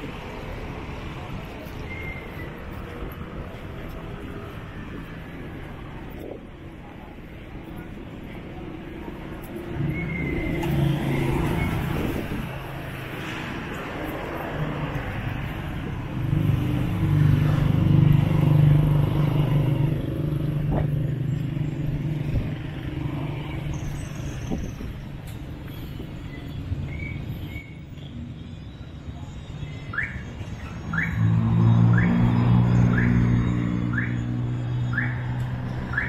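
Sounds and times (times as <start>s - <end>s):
street traffic noise: 0.0s - 36.0s.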